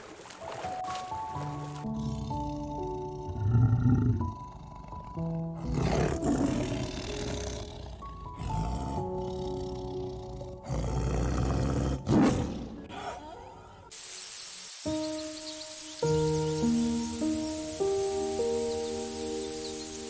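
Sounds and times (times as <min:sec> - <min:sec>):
soft background music: 0:00.0 - 0:12.3, 0:14.8 - 0:20.0
tiger growling and roaring: 0:01.9 - 0:13.4
steady high hiss: 0:13.9 - 0:20.0.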